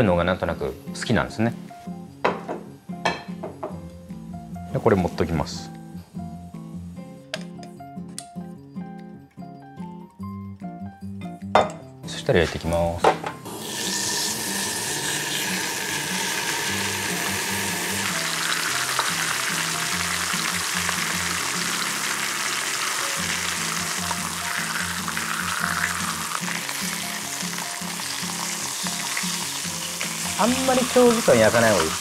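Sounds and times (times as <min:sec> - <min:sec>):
meat sizzling in a frying pan: 0:13.4 - 0:32.0.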